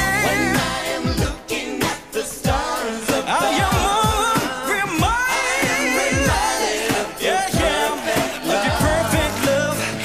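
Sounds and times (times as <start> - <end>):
pop song with vocal group and band: 0.0 - 10.0.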